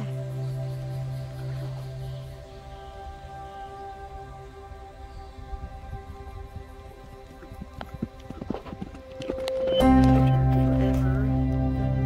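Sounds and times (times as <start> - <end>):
background music: 0.0 - 12.0
horse hoofbeats on soft dirt: 6.2 - 11.7.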